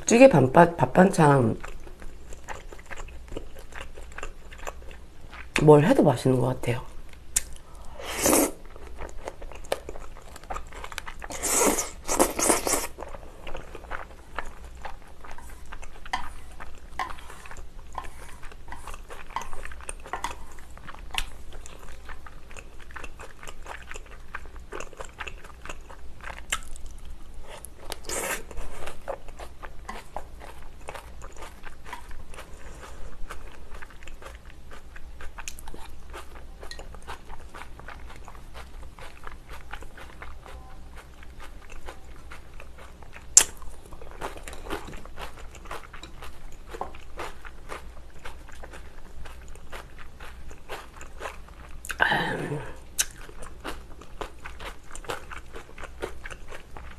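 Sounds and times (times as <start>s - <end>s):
chewing food: 1.2s - 5.7s, 8.6s - 52.0s, 52.7s - 56.9s.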